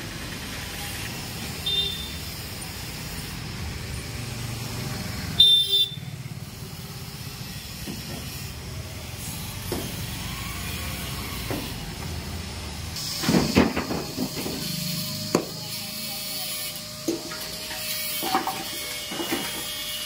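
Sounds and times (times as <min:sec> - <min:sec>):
street and engine rumble: 0:00.0 - 0:20.0
vehicle horn honking: 0:01.6 - 0:02.2, 0:05.4 - 0:06.2.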